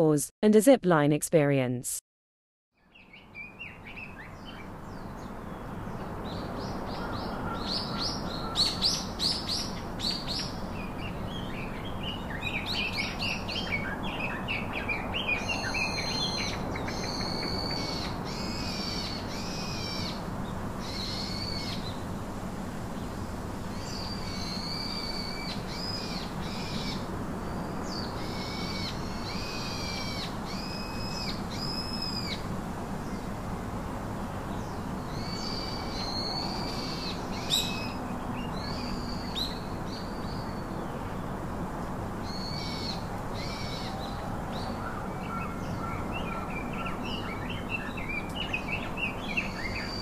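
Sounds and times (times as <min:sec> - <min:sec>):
whistled bird calls: 0:44.9 - 0:50.0.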